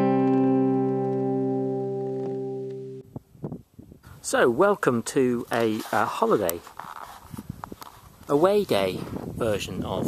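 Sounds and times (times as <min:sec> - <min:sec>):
strummed acoustic guitar chord: 0:00.0 - 0:03.0
faint background noise: 0:00.0 - 0:10.0.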